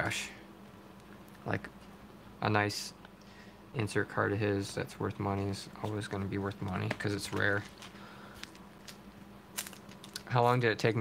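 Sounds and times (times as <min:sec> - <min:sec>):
foil wrapper crinkling: 0:09.6 - 0:10.3.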